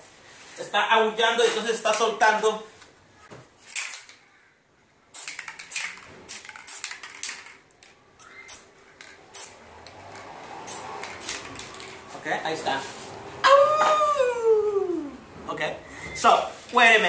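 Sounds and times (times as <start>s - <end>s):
spray-paint can hissing: 5.1s - 7.6s, 8.2s - 12.0s.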